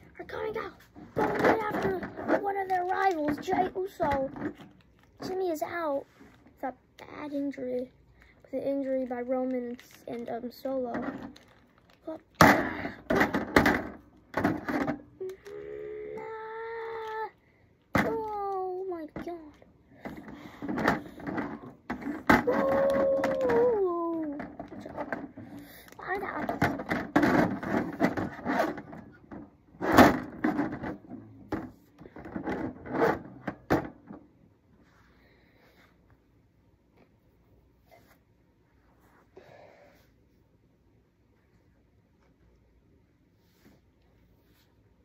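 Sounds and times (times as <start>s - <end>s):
plastic toy figures clacking: 1.2s - 5.5s, 8.8s - 16.2s
boy making vocal sound effects: 15.2s - 17.4s.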